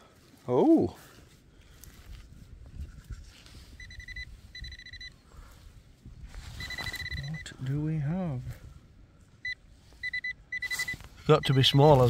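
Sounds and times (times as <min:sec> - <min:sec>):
hands rustling loose soil: 0:00.0 - 0:04.5, 0:05.3 - 0:07.8
metal detector beeping: 0:03.7 - 0:05.2, 0:06.5 - 0:07.6, 0:09.4 - 0:12.0.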